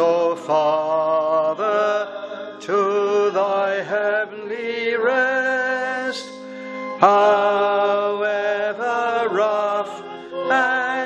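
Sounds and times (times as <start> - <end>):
slow hymn-like singing: 0.0 - 11.0.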